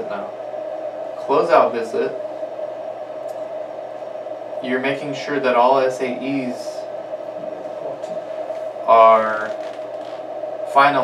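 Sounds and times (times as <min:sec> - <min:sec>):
steady room hum: 0:00.0 - 0:11.0.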